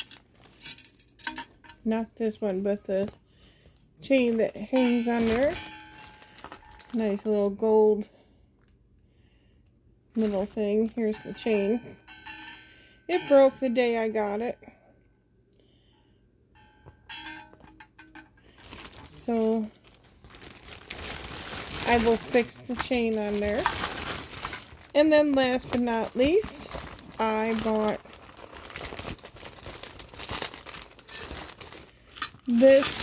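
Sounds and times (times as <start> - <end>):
plastic packaging crinkling: 0.0 - 0.7, 4.0 - 7.5, 10.2 - 11.7, 18.4 - 33.0
faint metal clinks: 0.0 - 8.0, 10.8 - 14.0, 16.6 - 19.8
small metal bell jingling: 0.6 - 7.3, 10.8 - 14.0.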